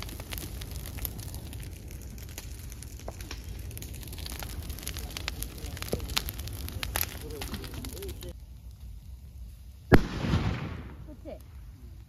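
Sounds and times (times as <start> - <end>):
fire crackling: 0.0 - 12.0
loud bang from bonfire: 9.9 - 11.5.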